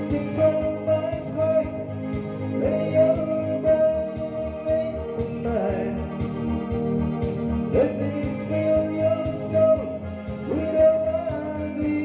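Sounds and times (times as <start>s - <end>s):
man singing into microphone: 0.0s - 6.2s, 7.7s - 12.0s
disco backing track: 0.0s - 12.0s.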